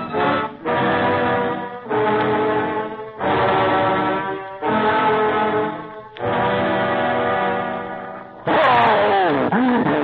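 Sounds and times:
held brass chords: 0.0s - 9.5s.

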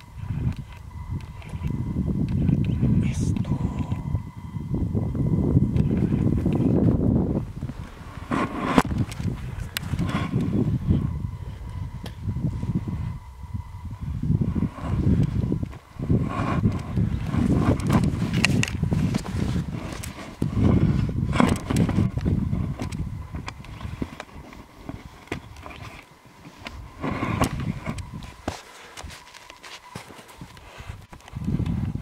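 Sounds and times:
sharp ski clicks: 16.4s - 31.7s.

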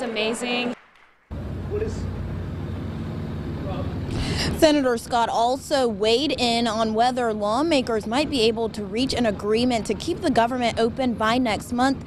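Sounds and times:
vehicle traffic rumble: 1.3s - 12.0s.

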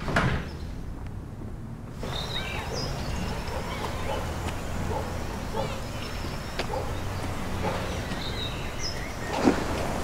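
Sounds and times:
bird chirps: 2.0s - 9.7s.

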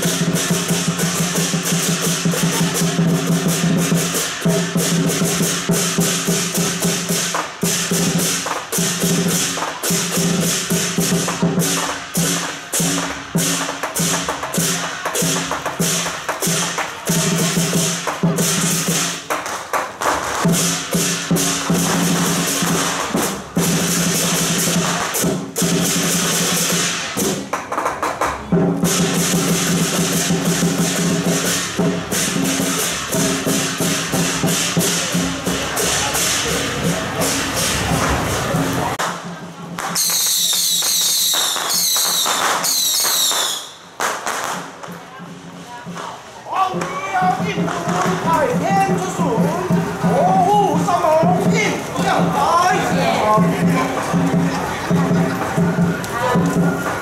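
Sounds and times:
drum beats: 0.0s - 57.0s
cymbal crashes: 28.8s - 39.3s
high falling whistles: 40.0s - 43.8s.

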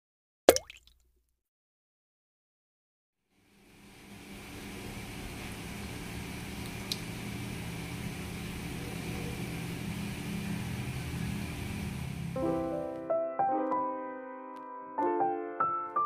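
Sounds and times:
low mechanical hum with hiss: 3.4s - 12.7s.

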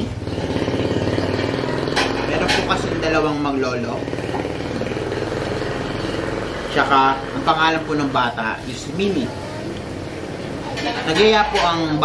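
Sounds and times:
small engine idling: 0.0s - 10.6s.

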